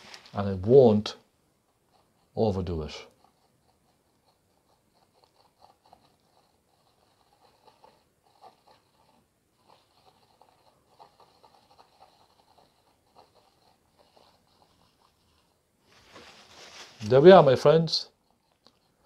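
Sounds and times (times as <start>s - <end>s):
paint brush dabbing on canvas: 0.0s - 19.0s.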